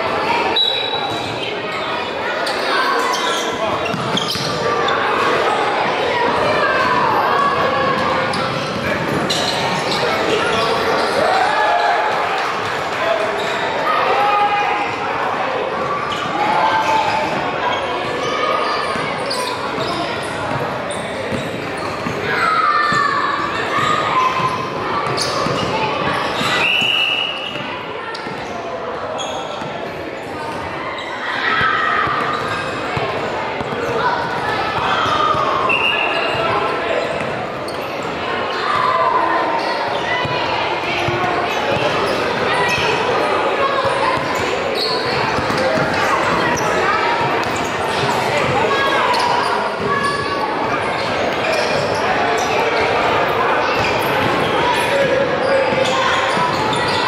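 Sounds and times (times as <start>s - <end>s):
shouts and chatter: 0.0s - 57.0s
high-pitched shoe squeaks: 2.4s - 4.6s.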